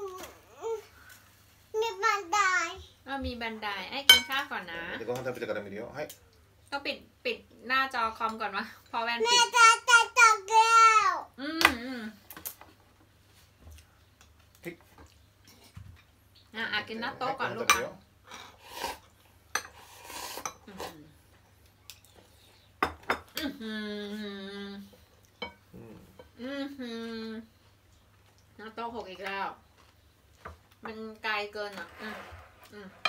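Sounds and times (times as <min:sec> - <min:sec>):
cutlery clinking on bowls: 0:04.1 - 0:04.4, 0:17.6 - 0:18.5, 0:19.5 - 0:19.8
cutlery clinking on ceramic bowl: 0:04.1 - 0:04.4, 0:17.7 - 0:17.9
cutlery scraping on plates: 0:19.5 - 0:20.7.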